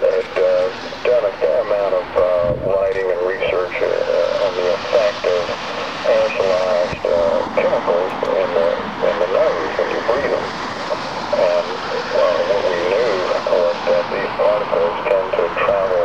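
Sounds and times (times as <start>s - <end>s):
muffled voice talking: 0.0s - 16.0s
steady hiss: 0.0s - 16.0s.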